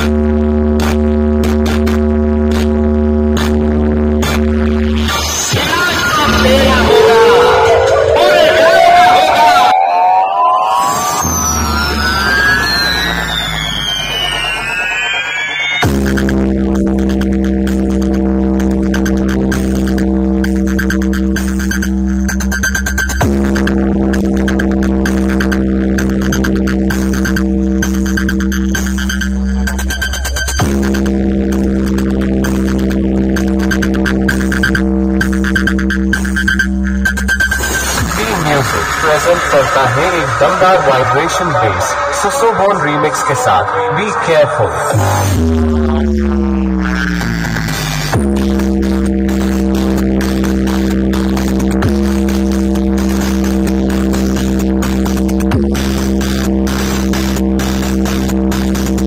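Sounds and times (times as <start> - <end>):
deep bass tone: 0.0 - 59.0
electronic dance music: 0.0 - 59.0
rising and falling synth sweeps: 4.9 - 20.0, 37.7 - 53.6
falling sweep: 5.2 - 15.9.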